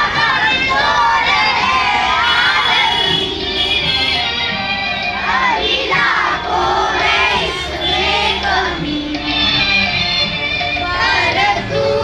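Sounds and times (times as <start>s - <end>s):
children singing a prayer: 0.0s - 3.6s, 5.2s - 9.3s, 10.8s - 12.0s.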